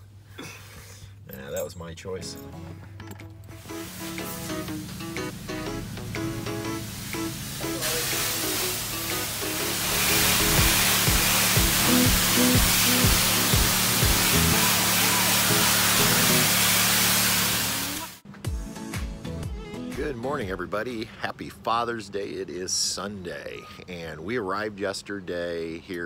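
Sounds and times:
background music with steady beat: 0:02.2 - 0:16.9, 0:17.9 - 0:20.7
pressure washer spraying water: 0:03.6 - 0:18.2.

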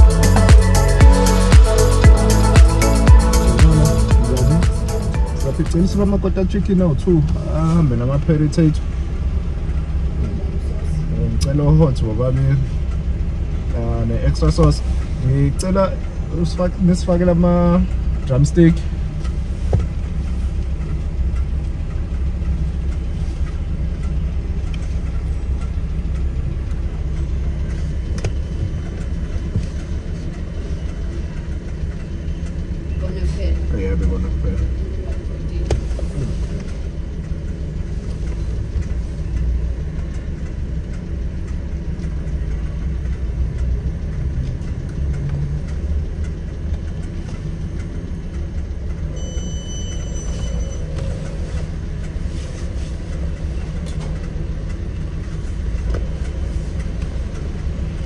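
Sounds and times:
short high electronic tone: 0:00.0 - 0:06.0, 0:49.2 - 0:51.0
indistinct voices: 0:00.0 - 0:07.4
car rumble from inside: 0:00.0 - 0:58.0.

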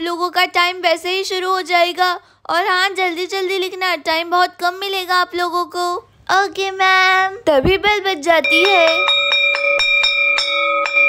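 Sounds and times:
school bell ringing: 0:08.4 - 0:11.0.

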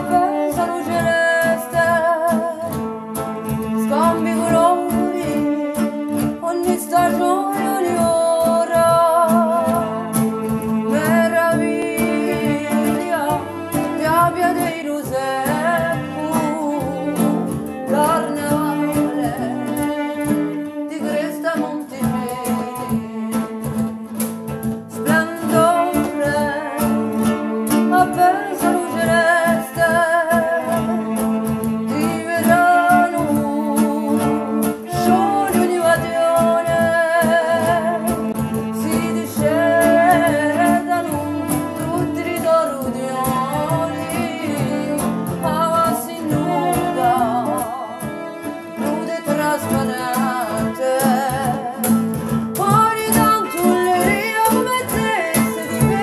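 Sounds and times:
acoustic guitar: 0:00.0 - 0:56.0
cajon percussion: 0:00.0 - 0:56.0
woman singing with vibrato: 0:00.0 - 0:56.0.

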